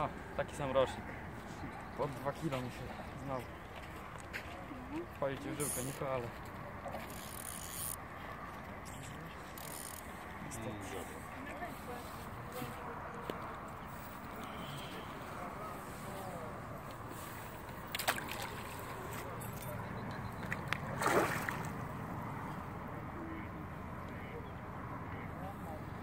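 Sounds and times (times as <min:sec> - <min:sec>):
fish thrashing in water: 0:17.6 - 0:19.4, 0:20.2 - 0:21.9
short splash: 0:17.9 - 0:19.0, 0:20.5 - 0:21.8.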